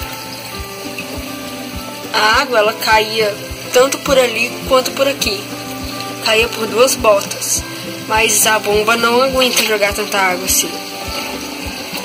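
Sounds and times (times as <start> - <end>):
background music with low beat: 0.0 - 12.0
water splashing and trickling: 0.0 - 12.0.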